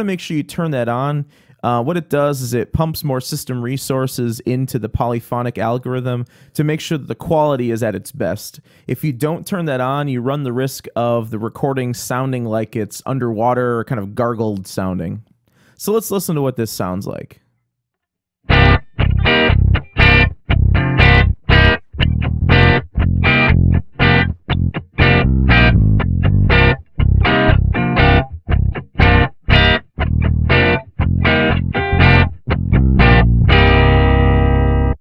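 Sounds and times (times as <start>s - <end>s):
distorted electric guitar stabs: 18.5s - 35.0s
electric bass stabs: 18.5s - 35.0s.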